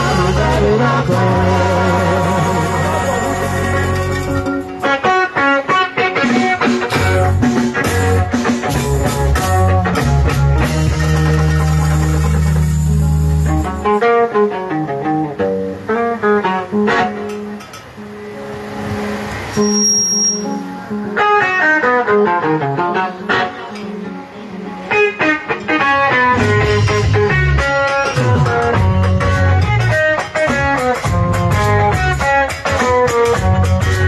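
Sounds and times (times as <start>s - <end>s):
low sustained bass notes: 0.0s - 4.6s, 7.0s - 14.1s, 26.3s - 30.0s, 31.0s - 32.4s.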